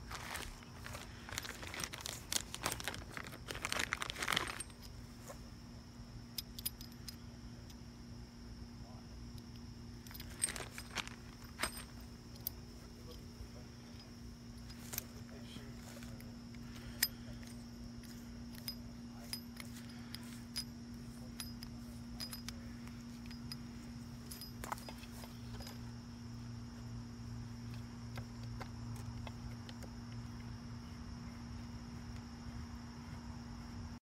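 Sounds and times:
steady high whine: 0.0s - 34.0s
steady low hum: 0.0s - 34.0s.

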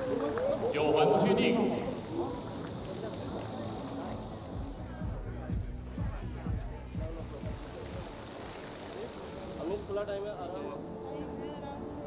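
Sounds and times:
background music with steady beat: 0.0s - 12.0s
outdoor background noise: 0.0s - 12.0s.

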